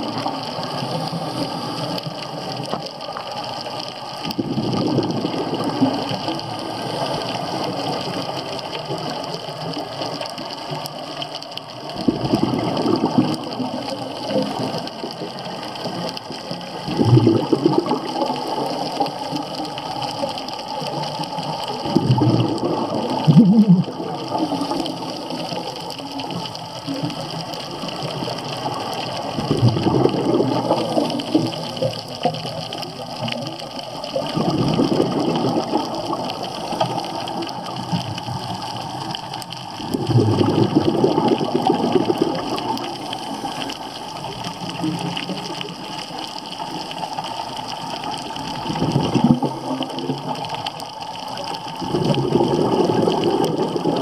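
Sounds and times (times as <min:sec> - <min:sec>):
steady watery hiss: 0:00.0 - 0:54.0
underwater exhalation bubbles: 0:04.2 - 0:54.0.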